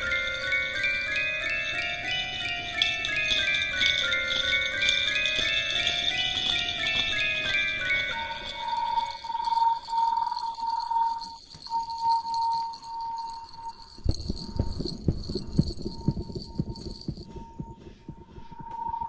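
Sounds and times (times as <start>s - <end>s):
high shimmer: 0.0s - 17.6s.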